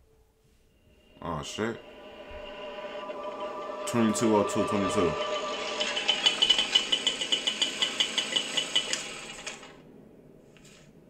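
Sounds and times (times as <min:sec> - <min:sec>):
rapid mechanical rattle: 0:01.1 - 0:09.8.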